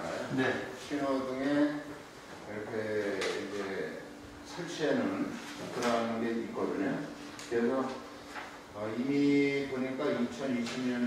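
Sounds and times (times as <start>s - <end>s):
man speaking into microphone: 0.0s - 8.1s, 8.8s - 11.0s.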